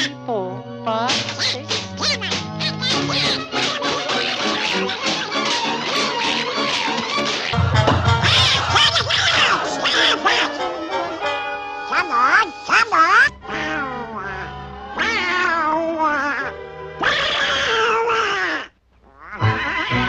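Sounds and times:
orchestral cartoon music: 0.0 - 17.2, 19.4 - 20.0
squawking garbled cartoon duck voice: 1.1 - 10.7, 11.9 - 20.0.

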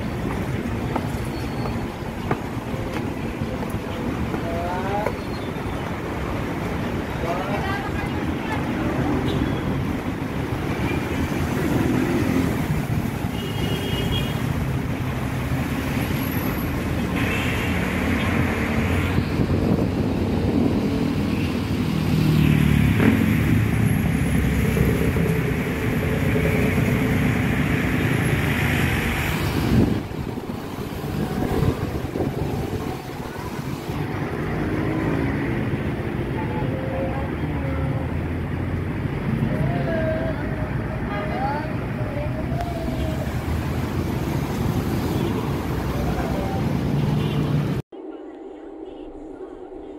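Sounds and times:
cars passing: 0.0 - 47.9
motorcycles running: 6.0 - 47.8.

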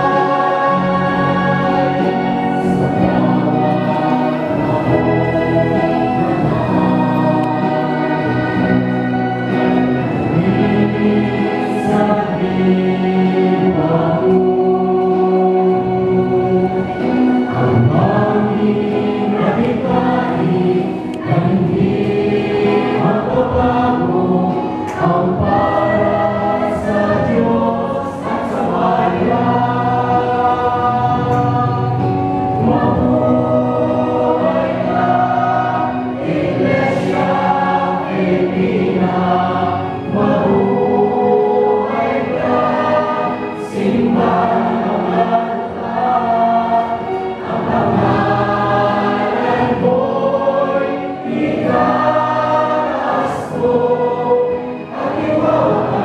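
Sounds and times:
church choir singing a hymn: 0.0 - 56.0.

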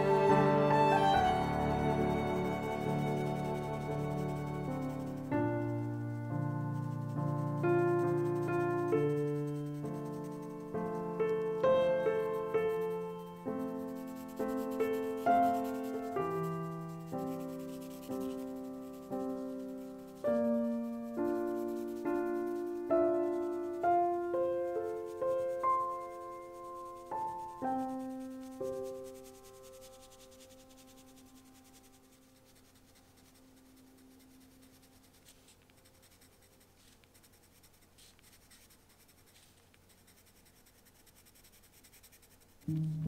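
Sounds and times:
piano playing slow chords: 0.0 - 29.4, 42.7 - 43.0
pencil scratching on paper: 0.0 - 42.8.

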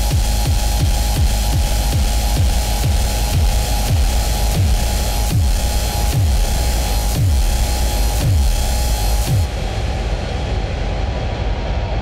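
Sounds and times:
dense rumbling noise: 0.0 - 12.0.

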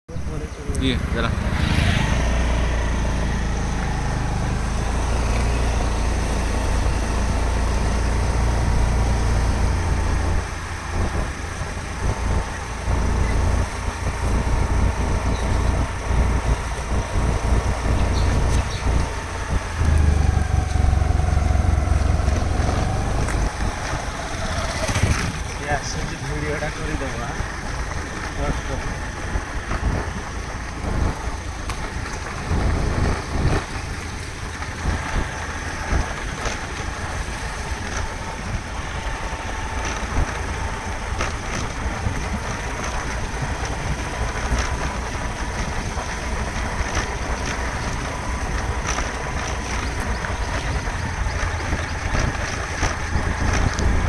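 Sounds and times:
wind rumbling on microphone: 0.1 - 54.0
small engine humming: 0.3 - 54.0.

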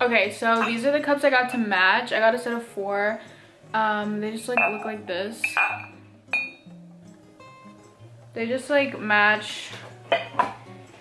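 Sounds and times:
soft background music: 0.0 - 11.0
ceramic mugs clinking: 0.4 - 1.7, 4.4 - 6.7, 10.1 - 10.7.

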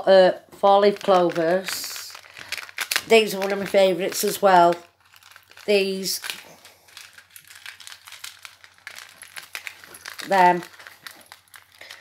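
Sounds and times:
plastic stand crackling and clicking: 0.9 - 12.0.

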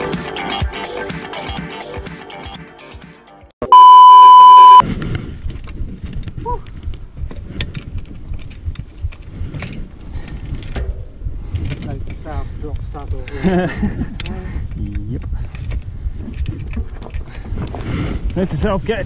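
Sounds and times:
loud electronic beep: 3.7 - 4.8
wind rumble on microphone: 4.8 - 19.0
people laughing: 13.3 - 14.4.

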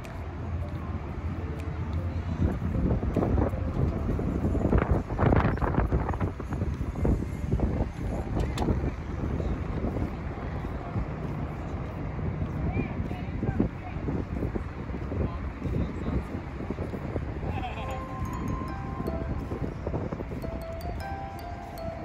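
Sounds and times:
passers-by talking: 0.0 - 22.0
road traffic hum: 0.0 - 22.0
wind on microphone: 0.0 - 22.0.

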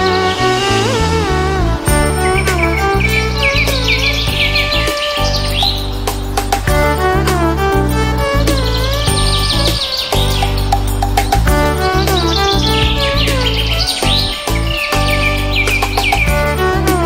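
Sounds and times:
background music sustained notes: 0.0 - 17.0
high bird-like chirps: 2.0 - 6.5, 8.4 - 16.4.

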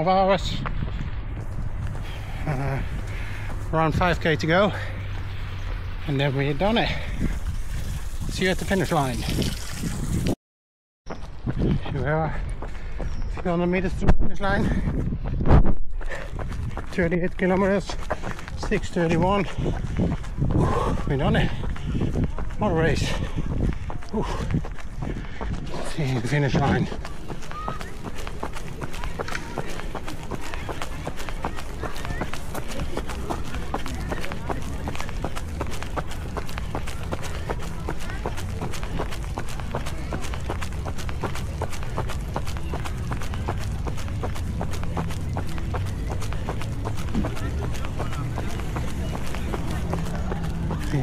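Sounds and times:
footsteps jogging on pavement: 0.0 - 10.2, 11.1 - 51.0.

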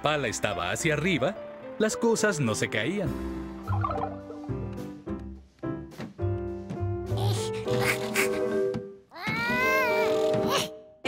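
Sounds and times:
light cartoon music: 0.0 - 11.0.

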